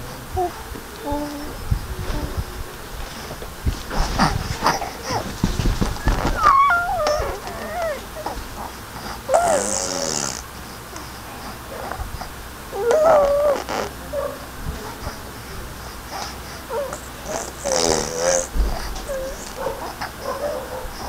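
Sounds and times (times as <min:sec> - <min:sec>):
low thumps of movement: 0:00.3 - 0:08.5
baby squealing: 0:06.0 - 0:08.4, 0:12.8 - 0:13.9.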